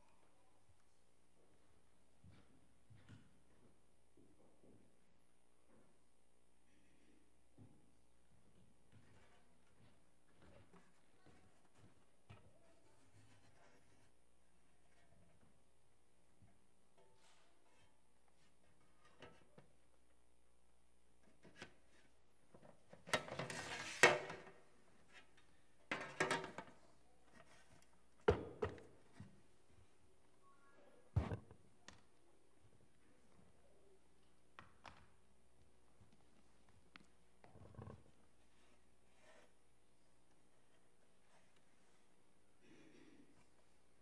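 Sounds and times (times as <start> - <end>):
faint room hum: 0.0 - 44.0.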